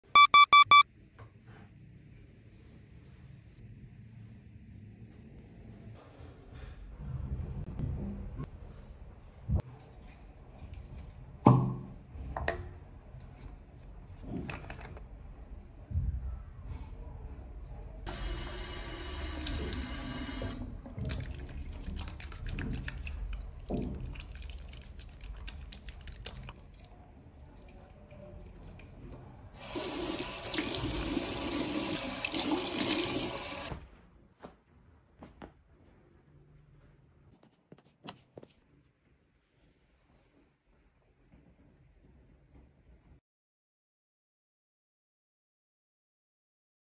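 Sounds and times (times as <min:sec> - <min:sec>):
tap water running into basin: 0:18.1 - 0:26.5, 0:29.6 - 0:33.7.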